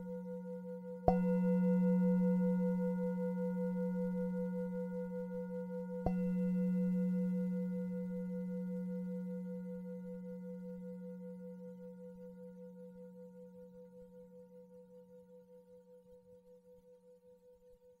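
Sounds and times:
singing bowl ringing: 0:00.0 - 0:15.0.

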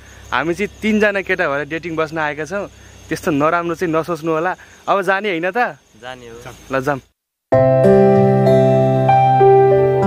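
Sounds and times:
high-pitched insect drone: 0:00.0 - 0:07.1
man talking: 0:00.3 - 0:07.1.

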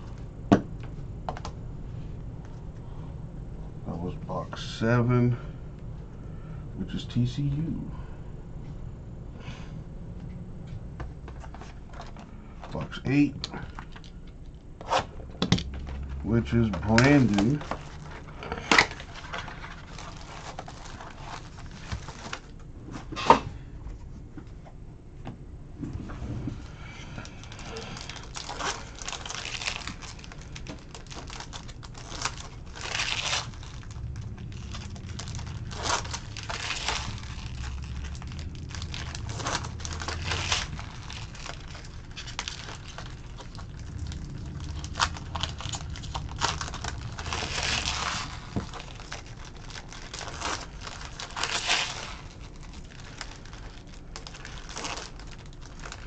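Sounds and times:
card wrappers crinkling and tearing: 0:15.6 - 0:22.6, 0:26.6 - 0:56.0.

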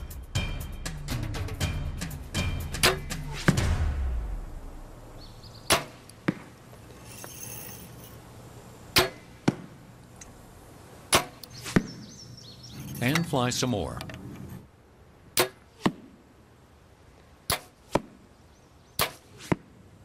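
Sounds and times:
musical drum sting: 0:00.5 - 0:05.0
arrow thudding into target: 0:02.9 - 0:04.4, 0:05.7 - 0:06.5, 0:09.0 - 0:09.7, 0:11.1 - 0:11.9, 0:17.5 - 0:18.1, 0:19.0 - 0:19.7.

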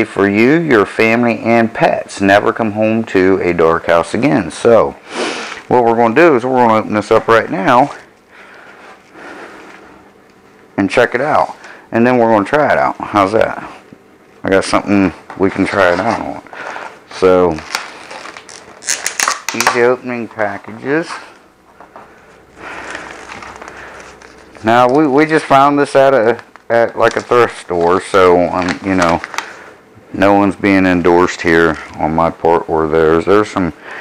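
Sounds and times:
plastic package rustling: 0:15.4 - 0:29.7.

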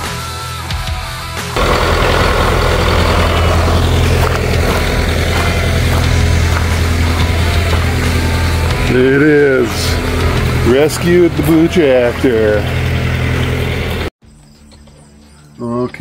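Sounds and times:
diesel tractor engine running: 0:01.6 - 0:14.1
rock music with guitar: 0:03.0 - 0:14.1.

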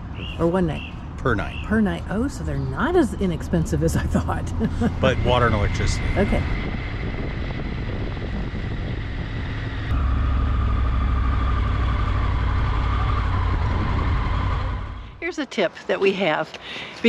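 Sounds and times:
motorcycle engine rumble: 0:00.0 - 0:15.3
wind noise: 0:02.9 - 0:15.3
faint whine: 0:04.7 - 0:15.2.

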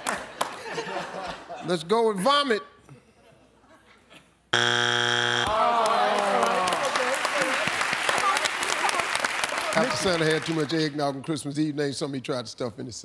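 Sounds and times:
audience clapping: 0:00.0 - 0:00.9, 0:05.4 - 0:11.0
electronic wrong-answer buzzer: 0:04.6 - 0:05.6.

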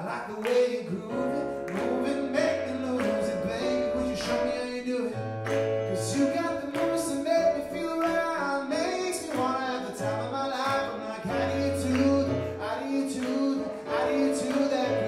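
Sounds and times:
electric keyboard chords: 0:00.0 - 0:15.0
man singing: 0:00.0 - 0:15.0.

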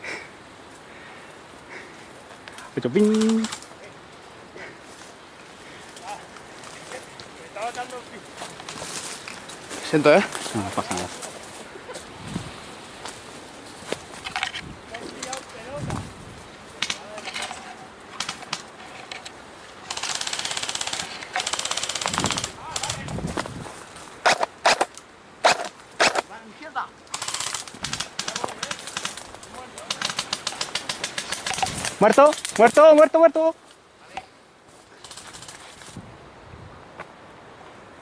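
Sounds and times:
airsoft guns firing: 0:18.2 - 0:18.7, 0:19.9 - 0:23.0, 0:24.2 - 0:26.2, 0:27.1 - 0:29.2, 0:29.8 - 0:32.4.

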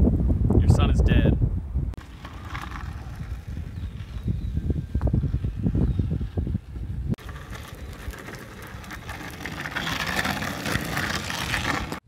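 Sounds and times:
wind buffeting microphone: 0:00.0 - 0:09.4.

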